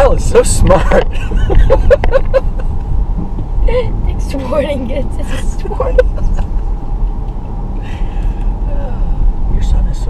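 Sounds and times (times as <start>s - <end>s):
road noise inside car: 0.0s - 10.0s
person laughing: 0.9s - 2.8s, 5.3s - 6.7s.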